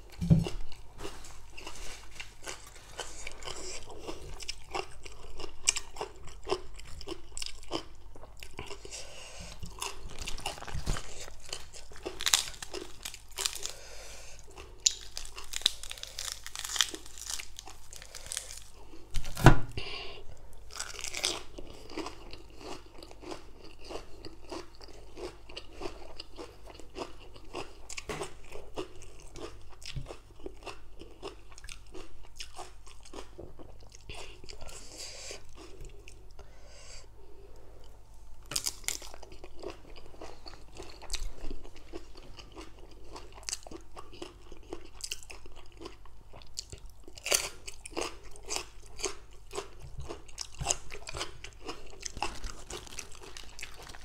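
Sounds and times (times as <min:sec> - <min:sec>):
person chewing crunchy food: 0:00.0 - 0:54.0.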